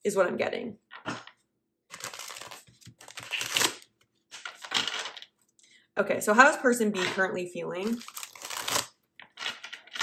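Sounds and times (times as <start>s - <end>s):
cards riffle shuffling: 1.9s - 3.8s.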